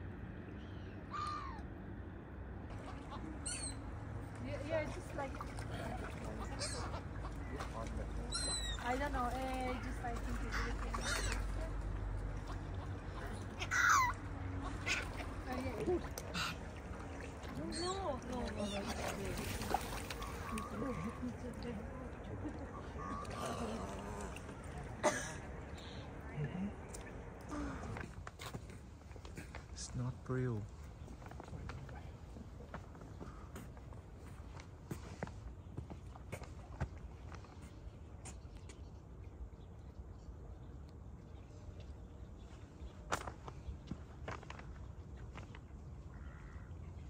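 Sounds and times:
low steady rumble: 0:00.0 - 0:35.8
waterbirds calling: 0:00.0 - 0:47.0.

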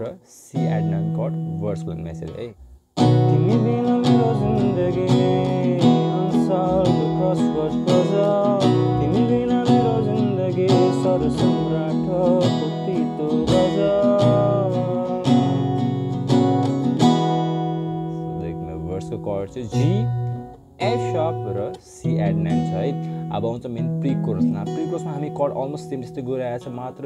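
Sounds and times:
acoustic guitar strumming: 0:00.6 - 0:27.0.

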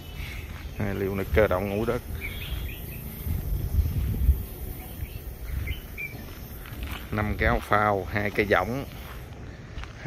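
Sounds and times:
low rumble on microphone: 0:00.0 - 0:08.3
faint bird chirps: 0:00.0 - 0:09.2.

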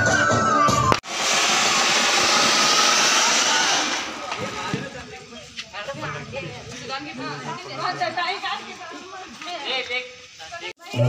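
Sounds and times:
fireworks fountain hissing: 0:00.0 - 0:10.9.

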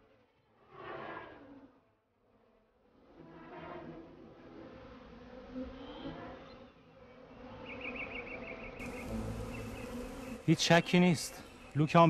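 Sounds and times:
honeybees buzzing: 0:04.5 - 0:12.0.

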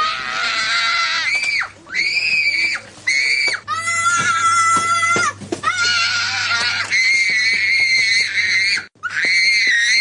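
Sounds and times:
young child screaming: 0:00.0 - 0:10.0.

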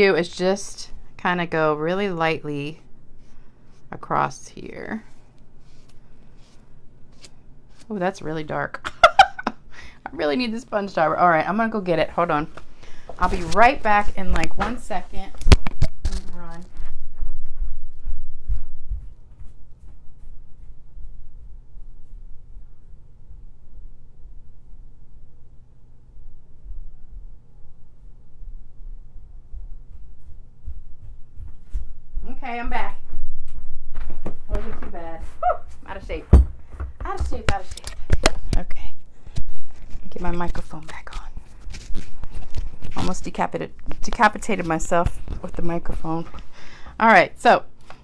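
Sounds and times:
woman's voice: 0:00.0 - 0:02.8, 0:03.9 - 0:05.1, 0:07.9 - 0:08.9, 0:10.0 - 0:12.5, 0:13.2 - 0:15.4, 0:32.2 - 0:33.0, 0:34.5 - 0:36.4, 0:37.0 - 0:39.0, 0:40.1 - 0:41.4, 0:42.9 - 0:46.4, 0:47.0 - 0:47.7
footsteps walking away: 0:16.6 - 0:22.4, 0:29.2 - 0:32.3.

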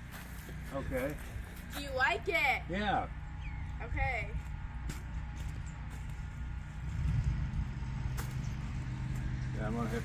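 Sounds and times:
vehicle engine rumble: 0:00.0 - 0:10.0.

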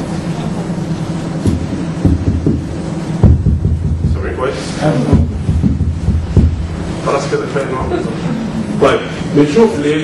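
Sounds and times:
microphone handling rumble: 0:01.3 - 0:07.2
dull thumps: 0:01.4 - 0:04.3, 0:05.0 - 0:06.9.

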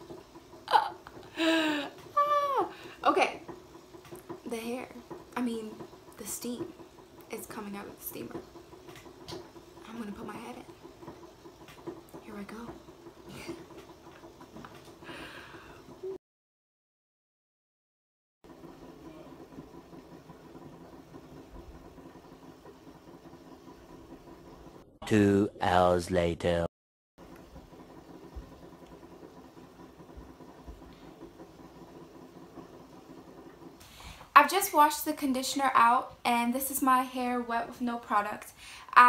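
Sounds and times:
hair steamer humming: 0:00.0 - 0:16.2, 0:27.2 - 0:39.0.

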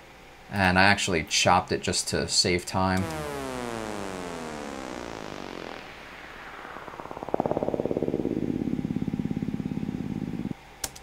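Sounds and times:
fast-pulsing synth bass: 0:03.0 - 0:10.6
synth effect sliding downward: 0:03.0 - 0:10.6.

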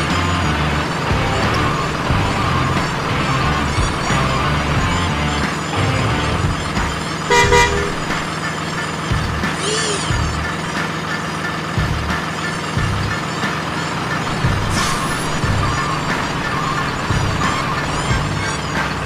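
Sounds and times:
steady low rumble: 0:00.0 - 0:08.3, 0:14.3 - 0:18.5
background music: 0:00.0 - 0:19.0
truck horn toot: 0:07.3 - 0:08.4, 0:14.3 - 0:19.0.

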